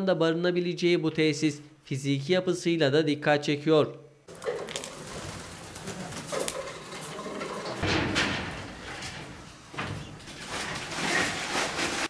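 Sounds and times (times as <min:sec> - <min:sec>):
rustling: 0:04.3 - 0:12.0.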